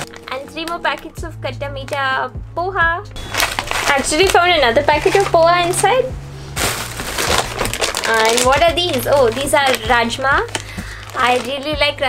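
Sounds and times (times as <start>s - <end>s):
plastic packaging crinkling: 3.2s - 5.9s, 6.5s - 12.0s.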